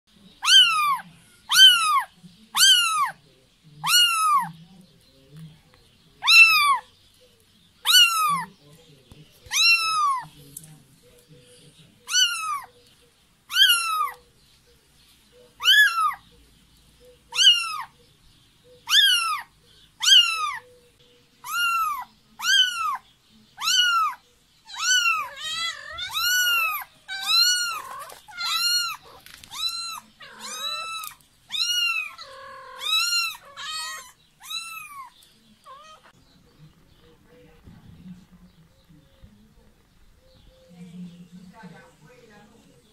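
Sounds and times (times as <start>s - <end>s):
kitten meowing: 0.4s - 3.2s, 3.8s - 4.5s, 6.2s - 6.8s, 7.8s - 8.5s, 9.5s - 10.2s, 12.1s - 12.7s, 13.5s - 14.2s, 15.6s - 16.2s, 17.3s - 17.9s, 18.8s - 20.6s, 21.4s - 23.0s, 23.6s - 36.1s.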